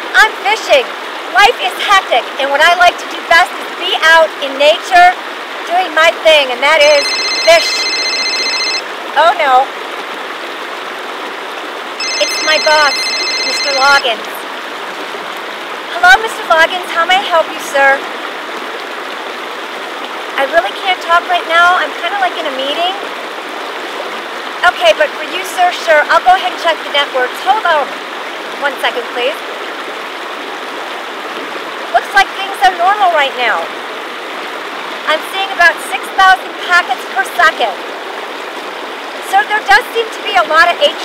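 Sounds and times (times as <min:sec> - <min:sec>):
creek flowing over rocks: 0:00.0 - 0:41.0.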